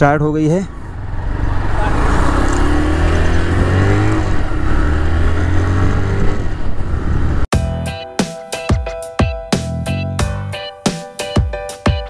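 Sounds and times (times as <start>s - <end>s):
motorcycle engine accelerating: 0.7s - 7.5s
background music: 7.5s - 12.0s.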